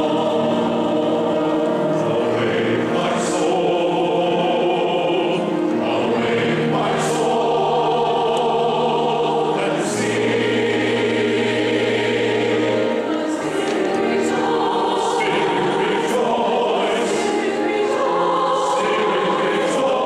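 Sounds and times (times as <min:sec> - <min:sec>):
amplified vocal team: 0:00.0 - 0:20.0
congregation singing a hymn: 0:00.0 - 0:20.0.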